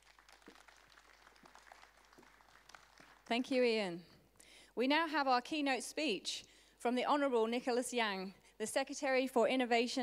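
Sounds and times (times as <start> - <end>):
faint audience applause: 0.0 - 3.5.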